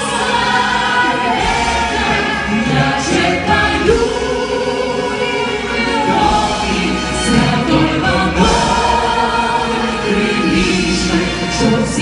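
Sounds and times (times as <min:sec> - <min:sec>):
band and orchestra playing: 0:00.0 - 0:12.0
voices singing in harmony: 0:00.0 - 0:12.0.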